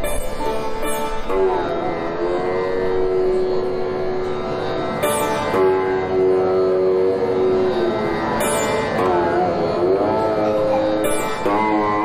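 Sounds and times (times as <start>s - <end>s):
sitar note sliding and ringing: 0.0s - 12.0s.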